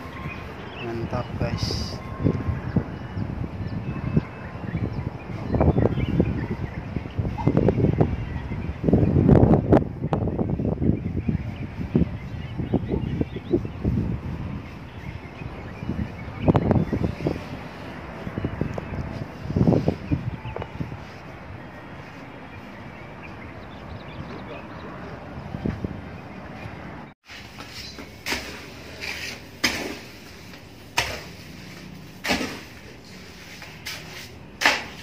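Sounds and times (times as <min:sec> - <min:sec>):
wind rumbling on microphone: 0:00.0 - 0:35.0.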